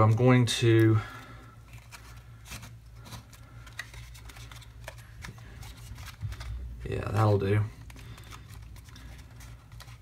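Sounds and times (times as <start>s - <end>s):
aluminium foil crinkling: 0.0s - 10.0s
steady low hum: 0.0s - 10.0s.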